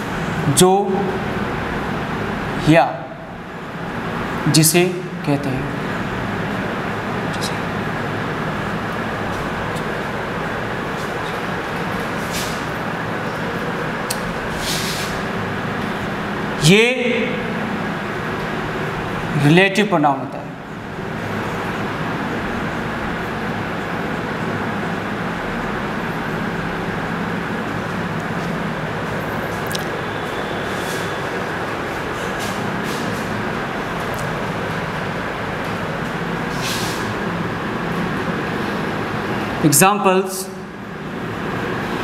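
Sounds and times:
room noise: 0.0s - 42.0s
rushing background noise: 0.0s - 42.0s
marker scraping on whiteboard: 11.0s - 12.7s, 30.1s - 31.2s.

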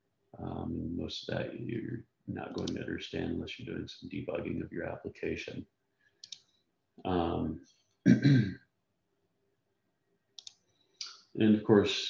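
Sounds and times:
computer mouse clicks: 6.2s - 6.5s, 10.4s - 10.6s.

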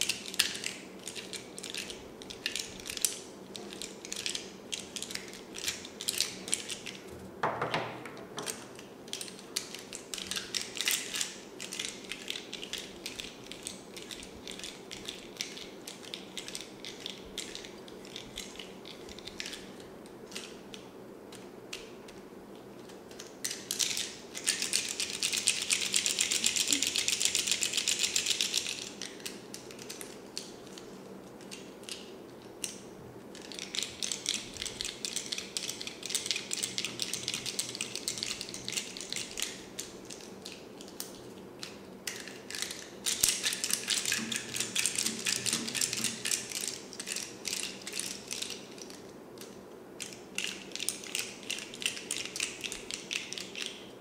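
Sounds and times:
plastic pens clicking and rattling: 0.0s - 7.0s, 8.4s - 22.2s, 22.8s - 53.8s.

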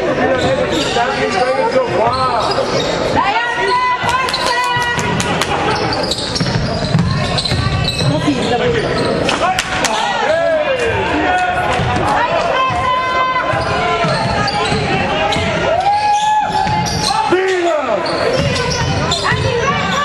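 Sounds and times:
sneakers squeaking: 0.1s - 10.1s, 10.9s - 20.0s
basketball bouncing on wooden floor: 6.4s - 8.1s
people calling out: 9.4s - 20.0s.

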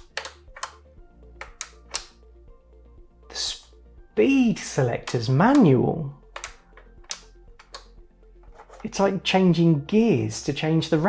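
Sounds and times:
speed selector clicking: 1.4s - 2.2s, 6.3s - 7.9s.

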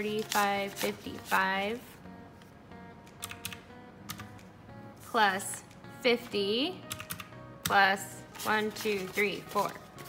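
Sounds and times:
quiet background music: 0.0s - 10.0s
calculator keys clicking: 3.2s - 4.4s, 6.9s - 7.8s.

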